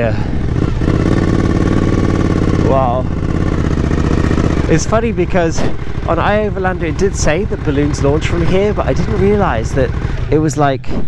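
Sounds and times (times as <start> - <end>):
motorcycle engine running: 0.0 - 10.8.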